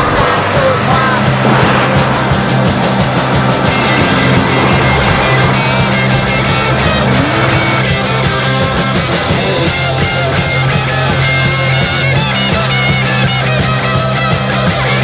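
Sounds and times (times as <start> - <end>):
car engine: 0.0 - 15.0
rock music: 0.0 - 15.0.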